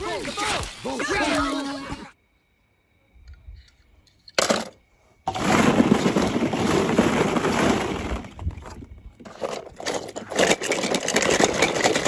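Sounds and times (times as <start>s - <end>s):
metal toy cars clattering: 3.6s - 8.3s, 9.2s - 12.0s.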